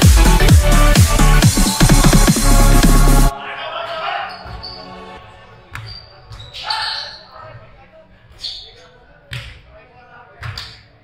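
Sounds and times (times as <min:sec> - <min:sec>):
faint voices in a hall: 0:03.3 - 0:11.0.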